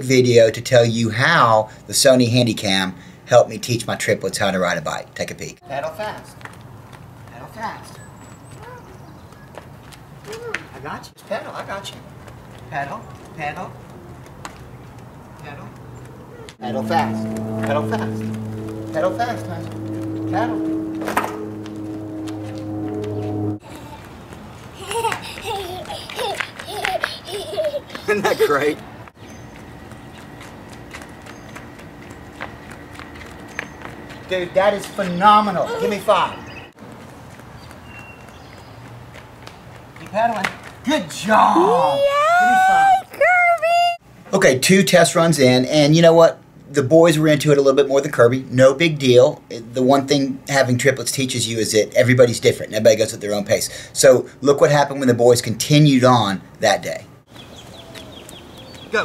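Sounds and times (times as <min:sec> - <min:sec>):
bird chirping: 0:07.8 - 0:09.7, 0:29.2 - 0:36.8, 0:37.4 - 0:39.8, 0:57.3 - 0:59.0
sandal footsteps on concrete: 0:08.3 - 0:10.7, 0:11.9 - 0:16.6, 0:29.2 - 0:35.0, 0:36.8 - 0:40.9
man shouting: 0:35.6 - 0:36.3, 0:41.0 - 0:43.0.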